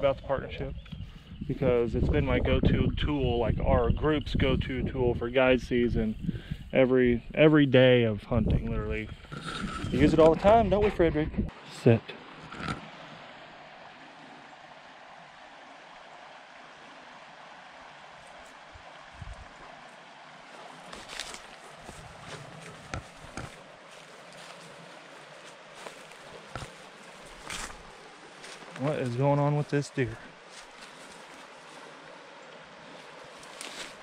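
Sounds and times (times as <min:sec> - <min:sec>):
creek water running: 0:00.0 - 0:34.0
rustles in dry grass and leaves: 0:18.1 - 0:29.2, 0:30.3 - 0:34.0.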